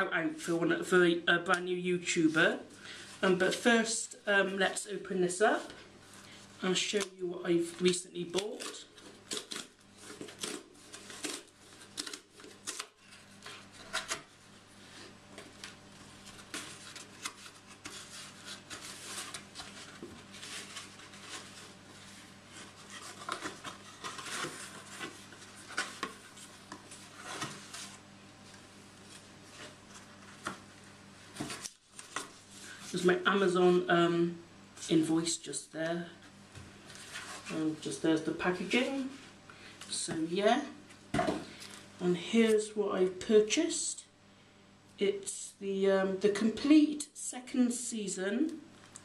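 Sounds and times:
cardboard tearing and rustling: 7.8 - 28.1.

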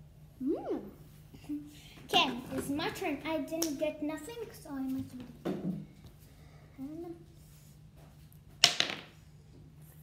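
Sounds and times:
die clattering on table: 8.6 - 9.1.

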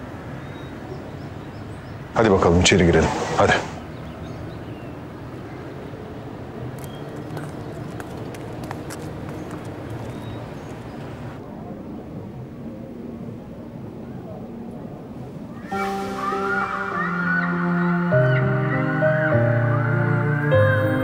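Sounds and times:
low steady street rumble: 0.0 - 21.0
footsteps on paving stones: 6.7 - 11.4.

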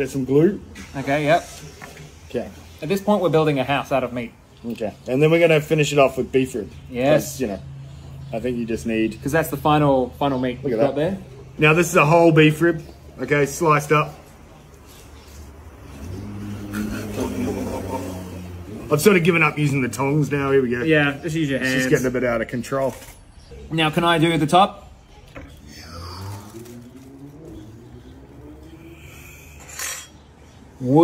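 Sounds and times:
vehicle engine humming: 5.6 - 21.5, 23.6 - 30.8.

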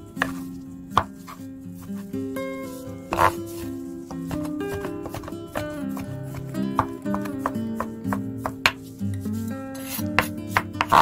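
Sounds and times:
soft background music: 0.0 - 11.0
knife chopping on wooden board: 0.2 - 0.4, 3.1 - 3.4, 4.1 - 8.8, 9.8 - 11.0.

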